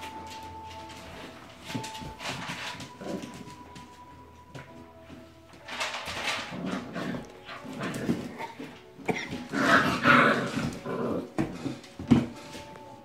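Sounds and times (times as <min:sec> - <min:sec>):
puppies growling: 0:06.2 - 0:11.9.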